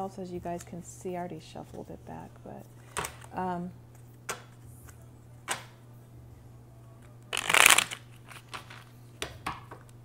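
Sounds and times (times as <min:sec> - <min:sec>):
cards shuffled by hand: 0:07.3 - 0:08.9
card clicks: 0:07.4 - 0:08.8.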